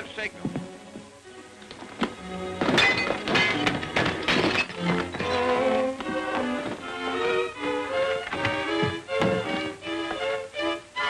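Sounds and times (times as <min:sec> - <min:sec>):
orchestral film music: 0:00.0 - 0:11.0.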